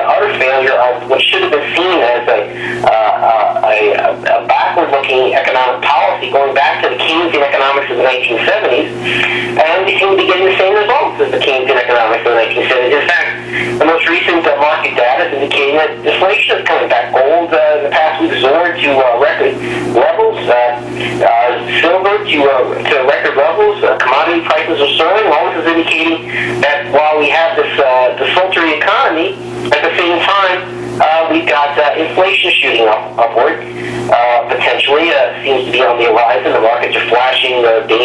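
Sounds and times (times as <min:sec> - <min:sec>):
low hum: 0:00.0 - 0:38.0
man talking: 0:00.0 - 0:38.0.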